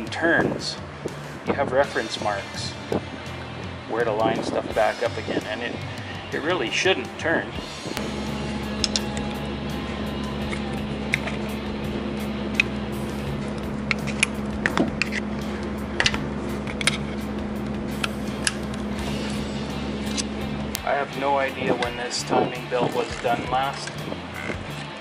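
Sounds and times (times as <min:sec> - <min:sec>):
low hum: 0:00.8 - 0:25.0.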